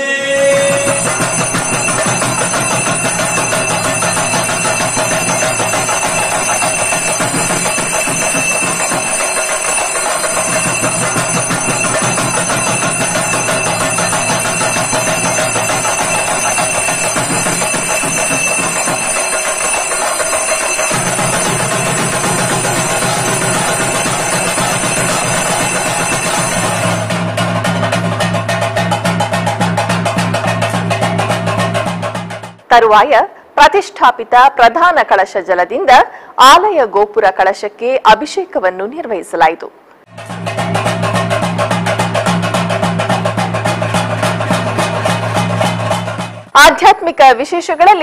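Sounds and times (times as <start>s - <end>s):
instrumental music: 0.0s - 32.7s, 40.1s - 46.6s.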